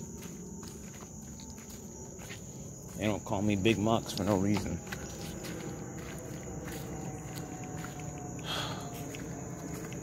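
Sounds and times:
footsteps through wet grass: 0.0s - 10.0s
insects trilling: 0.0s - 10.0s.

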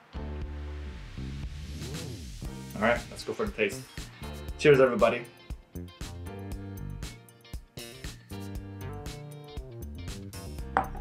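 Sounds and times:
background music: 0.0s - 11.0s
glass set down on wooden table: 10.8s - 11.0s.

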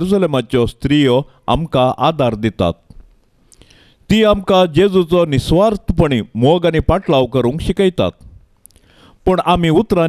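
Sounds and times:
man reciting a prayer: 0.0s - 2.9s, 4.1s - 8.3s, 9.2s - 10.0s
soft intake of breath: 3.4s - 4.1s, 8.7s - 9.2s.

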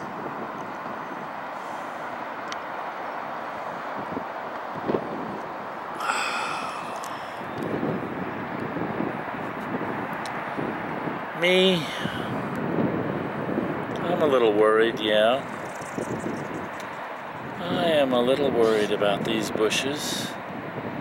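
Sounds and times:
distant traffic noise: 0.0s - 21.0s.

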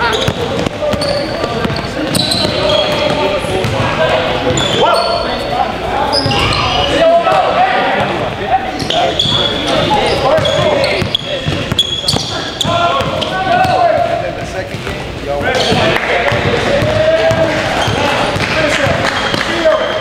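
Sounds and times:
basketball bouncing on court: 0.0s - 3.9s, 8.8s - 15.0s, 15.6s - 19.6s
people calling out: 0.0s - 5.4s
sneakers squeaking: 0.0s - 20.0s.

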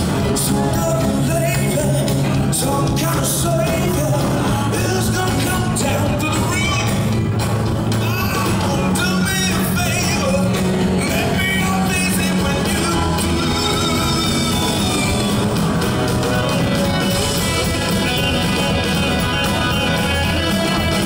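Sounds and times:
blues-rock band playing: 0.0s - 21.0s
male lead vocal: 0.0s - 21.0s.

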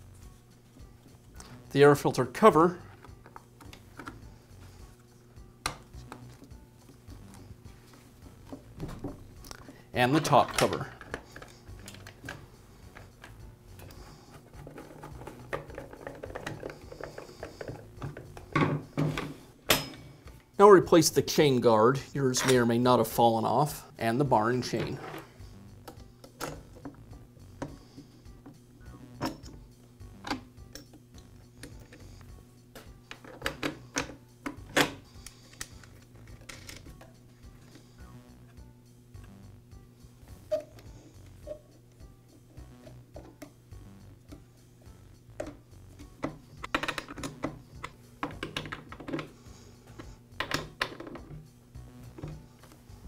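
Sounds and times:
low steady hum: 0.0s - 53.0s
chainsaw parts clicking and clattering: 35.5s - 36.9s.

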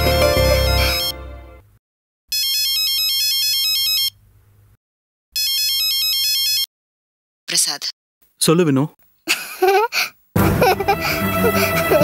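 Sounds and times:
mobile phone ringtone: 0.0s - 1.5s, 2.3s - 4.2s, 5.4s - 6.7s
background music: 0.0s - 1.7s, 10.4s - 12.0s.

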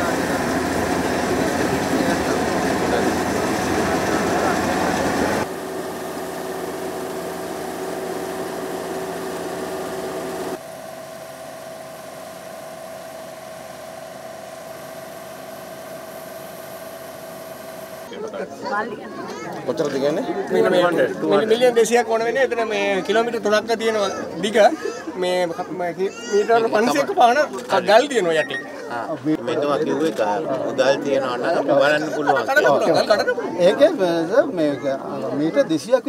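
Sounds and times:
harvesting machine engine running: 0.0s - 18.1s.

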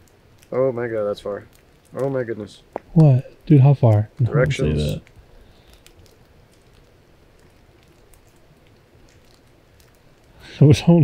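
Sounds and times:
rain hiss: 0.0s - 11.0s
raindrops ticking: 0.0s - 11.0s.

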